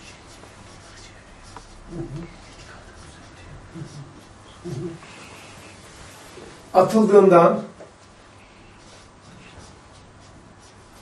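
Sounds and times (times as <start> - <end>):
marker writing on whiteboard: 0.0 - 5.7, 8.0 - 11.0.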